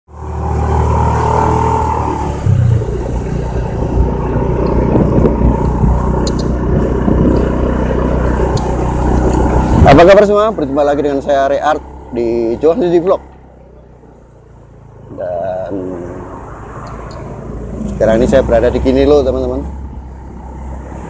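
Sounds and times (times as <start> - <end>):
motorcycle engine running: 0.1 - 15.7
wind rush on microphone: 1.9 - 10.2.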